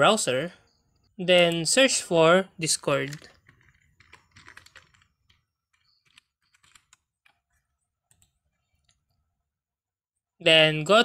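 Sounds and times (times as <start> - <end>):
keyboard keystrokes: 3.1 - 7.0.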